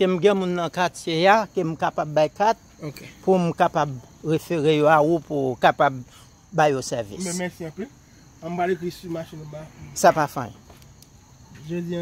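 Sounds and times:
crickets chirping: 0.0 - 12.0
man talking: 6.6 - 10.5, 11.6 - 12.0.

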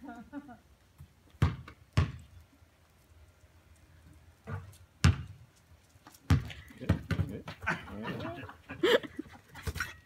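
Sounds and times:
basketball bouncing: 1.4 - 2.3, 4.4 - 5.4, 6.3 - 7.6.

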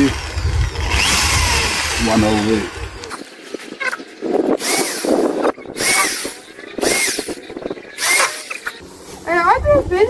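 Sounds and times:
cordless drill boring through wood: 0.0 - 3.1, 4.6 - 8.6.

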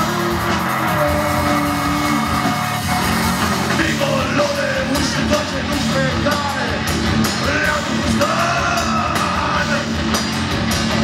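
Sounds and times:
bass: 0.0 - 11.0
drum kit: 0.0 - 11.0.

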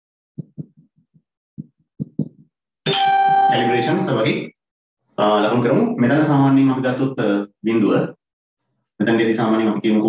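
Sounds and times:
marker pen ticking on whiteboard: 0.4 - 2.5
man speaking: 3.5 - 4.5, 5.2 - 8.2.

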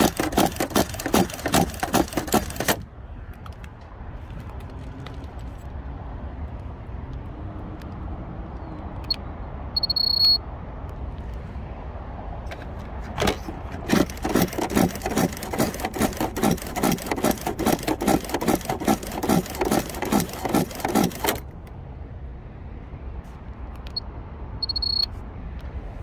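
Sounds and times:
carried phone rustling and jangling: 0.0 - 2.9, 12.5 - 21.4
short high electronic beep: 9.8 - 10.4, 24.6 - 25.1.

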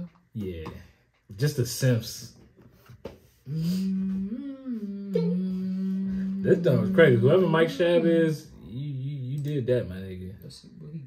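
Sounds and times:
man humming: 3.5 - 9.2.

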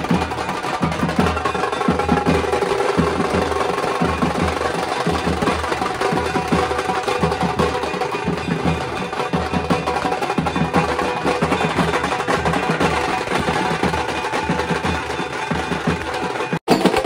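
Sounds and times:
marching drums beaten fast: 0.0 - 17.0.

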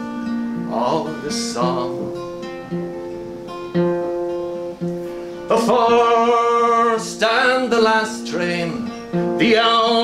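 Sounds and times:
acoustic guitar chords: 0.0 - 10.0.

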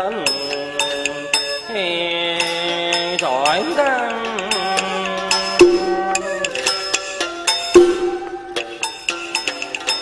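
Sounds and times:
person singing long note: 5.6 - 6.7
sharp percussion clicks: 5.6 - 6.7, 7.8 - 8.8.

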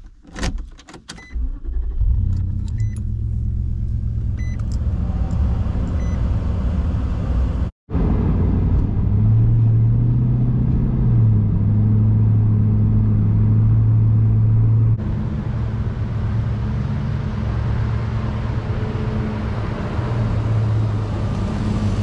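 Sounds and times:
car engine starting and idling: 0.0 - 22.0.

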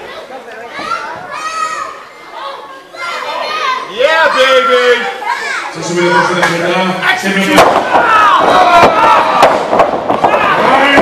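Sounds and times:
children shouting: 0.0 - 6.4, 7.5 - 11.0
crowd chatter: 0.0 - 11.0.

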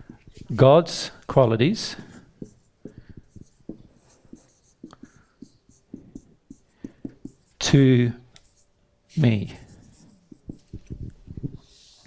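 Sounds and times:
marker pen writing on whiteboard: 0.0 - 0.7, 1.8 - 12.0.

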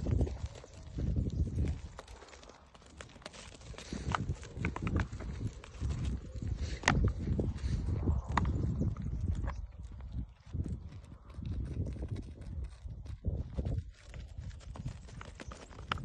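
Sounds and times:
hooves clattering on stony ground: 0.0 - 16.0
wind rumble on microphone: 0.0 - 16.0.

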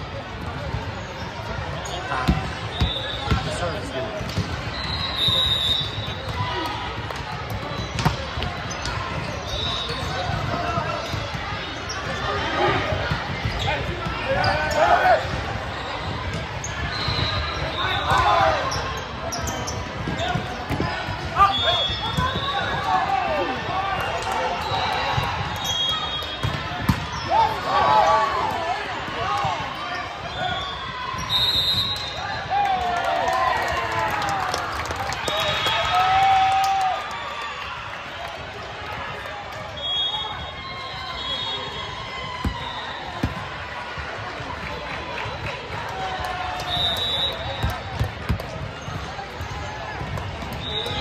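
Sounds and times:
voices talking and shouting: 0.2 - 34.5
sneakers squeaking on court: 0.6 - 6.4, 7.6 - 22.8, 25.6 - 28.0.

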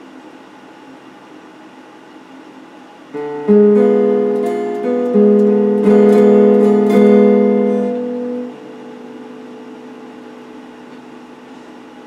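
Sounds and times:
electric guitar chord ringing: 3.1 - 12.0.

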